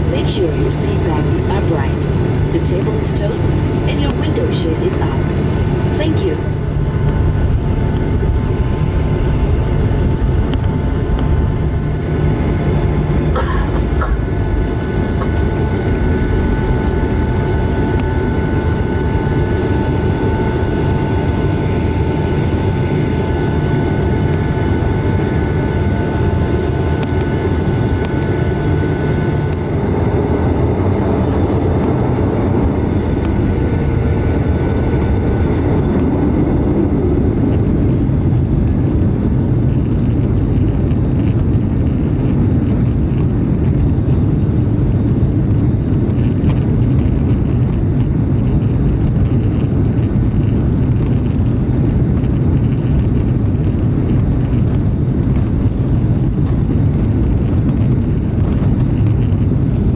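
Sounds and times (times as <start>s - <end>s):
aircraft cabin low rumble: 0.0s - 59.9s
high steady engine tones: 0.0s - 59.9s.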